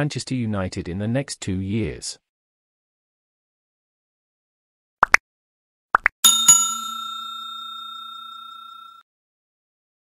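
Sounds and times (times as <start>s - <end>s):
notification bell ringing: 6.2s - 9.0s.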